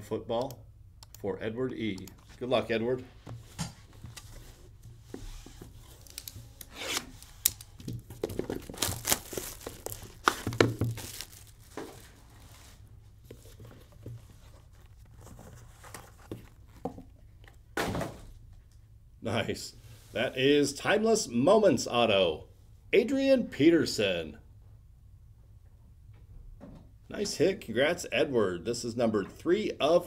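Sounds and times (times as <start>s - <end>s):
cardboard and wrapping crinkling: 3.8s - 17.0s.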